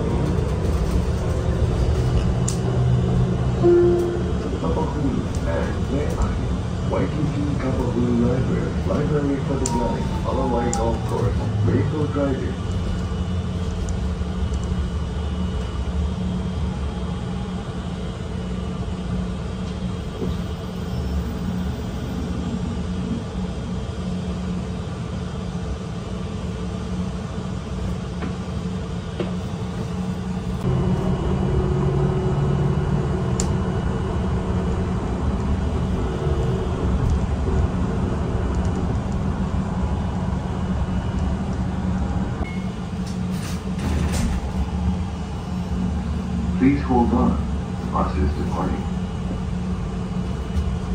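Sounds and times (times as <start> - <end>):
bus engine rumble from inside: 0.0 - 50.9.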